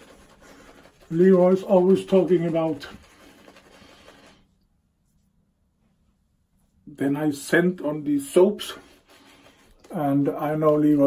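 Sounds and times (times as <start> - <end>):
shaving brush rubbing on stubble: 0.0 - 4.5, 8.3 - 11.0.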